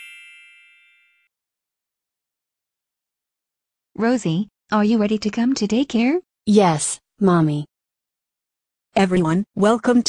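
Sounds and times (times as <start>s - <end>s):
bell-like metallic ding: 0.0s - 1.3s.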